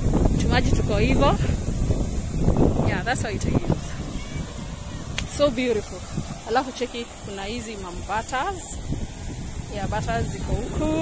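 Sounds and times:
wind buffeting microphone: 0.0s - 11.0s
person talking: 9.7s - 11.0s.

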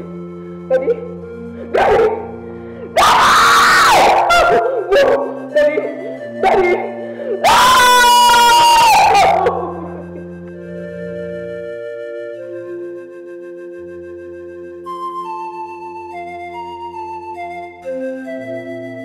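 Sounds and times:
background music: 0.0s - 19.0s
woman screaming and wailing: 0.7s - 10.2s
sobbing cries: 0.7s - 10.3s.

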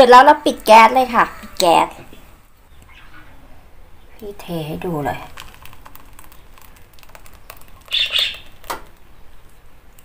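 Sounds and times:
soup pouring into a bowl: 5.3s - 8.7s.

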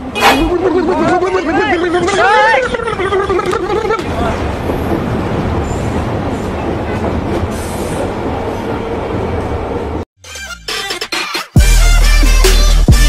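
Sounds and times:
metro train rumble: 0.0s - 10.1s.

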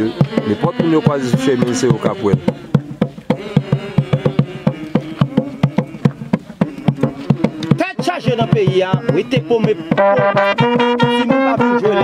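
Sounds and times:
quick drumbeats: 0.0s - 12.0s
buzzing horn note: 10.0s - 12.0s.

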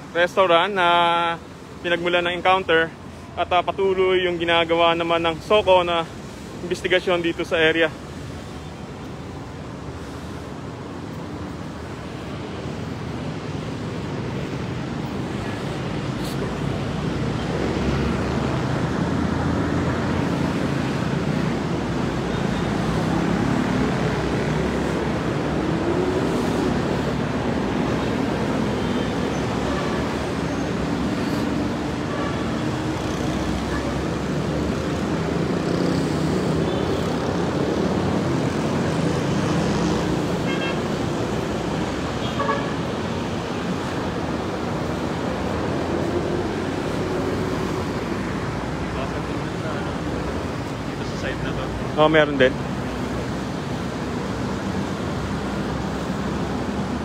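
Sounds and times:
city street traffic: 0.0s - 57.0s.

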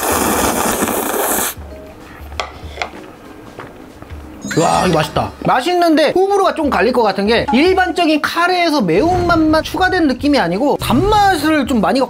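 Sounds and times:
person slurping noodles: 0.0s - 1.6s.

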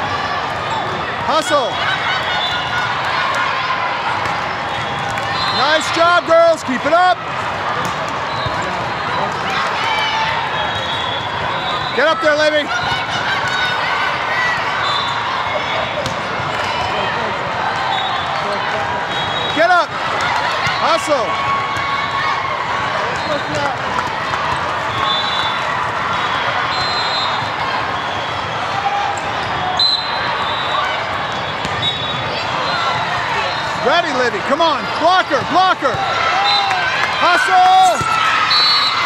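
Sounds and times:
crowd voices hubbub: 0.0s - 39.0s
sneakers squeaking: 7.8s - 9.3s, 24.6s - 33.9s.

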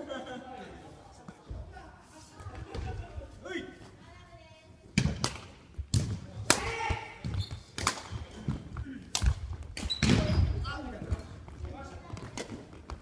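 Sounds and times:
rackets striking shuttlecock: 7.7s - 8.4s, 9.1s - 10.2s.

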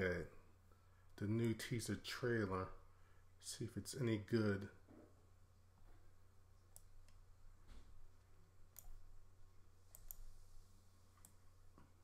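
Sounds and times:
low steady hum: 0.0s - 12.0s
faint sharp clicks: 9.9s - 10.3s.

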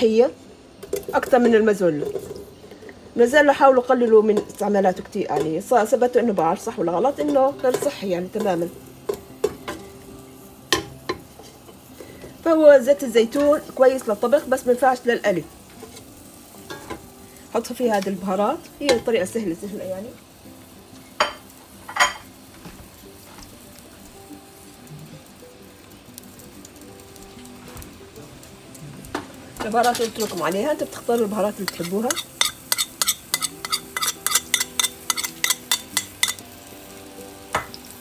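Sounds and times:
vegetables sizzling in oil: 0.0s - 38.0s
vegetables clinking in metal pot: 0.8s - 2.8s, 7.0s - 9.8s, 29.6s - 36.4s.

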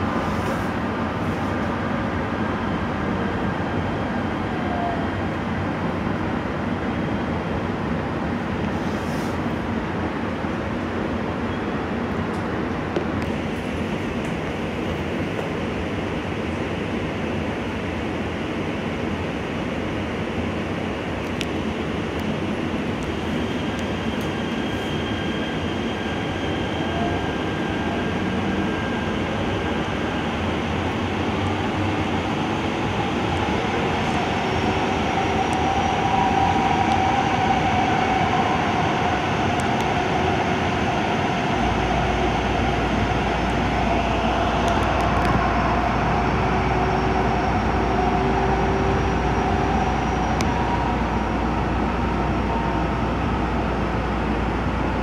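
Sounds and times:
train running through tunnel: 0.0s - 55.0s
wavering whine: 23.0s - 55.0s.

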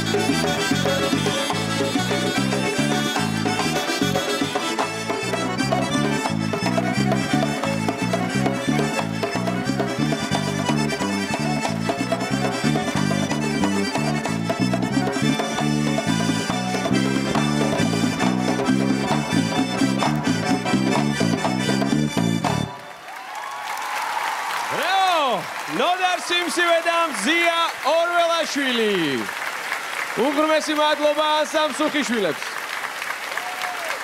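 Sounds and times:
folk dance music with accordion: 0.0s - 23.0s.

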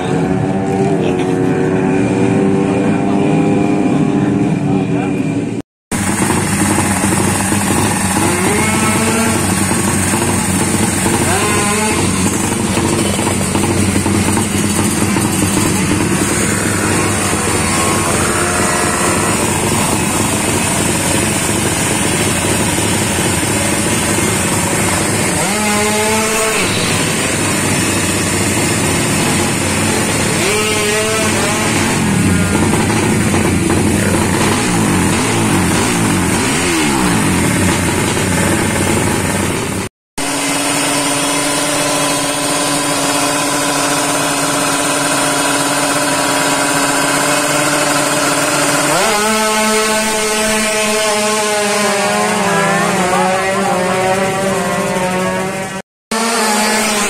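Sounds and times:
motorcycle engines revving: 0.0s - 57.0s.

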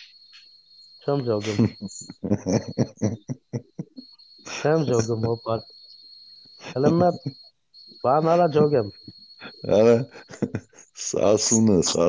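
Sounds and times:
thin high-pitched whine: 0.0s - 12.0s
man's voice: 1.1s - 3.8s, 4.5s - 5.6s, 6.6s - 7.3s, 8.0s - 12.0s.

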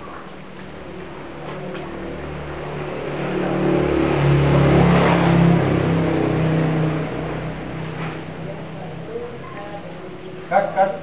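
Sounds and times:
vehicle engine passing by: 0.7s - 11.0s.

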